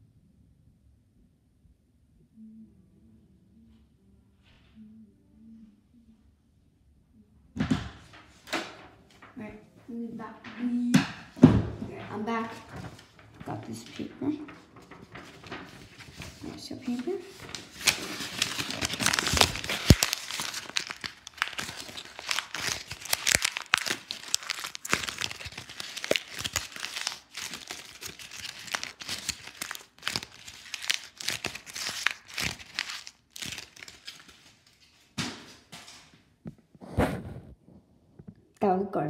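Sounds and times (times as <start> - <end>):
paper being crumpled: 11.2 - 34.9.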